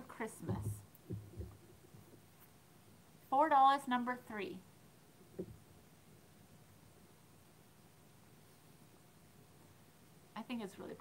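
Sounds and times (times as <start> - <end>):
soft low thuds: 0.4 - 2.3, 5.3 - 5.7.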